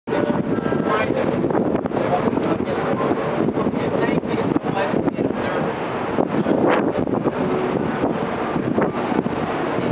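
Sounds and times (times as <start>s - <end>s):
boat engine running: 0.1s - 9.9s
wind on microphone: 0.1s - 9.9s.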